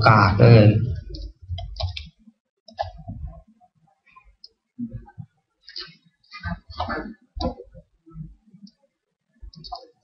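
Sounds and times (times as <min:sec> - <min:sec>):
mouse and keyboard clicks: 0:01.1 - 0:03.2, 0:09.5 - 0:10.0.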